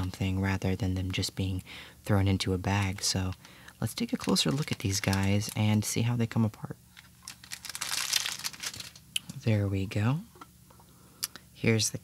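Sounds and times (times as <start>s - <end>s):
plastic bag crinkling: 2.7s - 6.0s, 6.9s - 9.1s.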